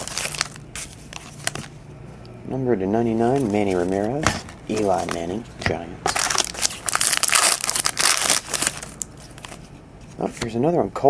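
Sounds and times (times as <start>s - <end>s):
foil wrapper crinkling: 0.0s - 1.7s, 3.3s - 5.4s, 6.1s - 9.7s.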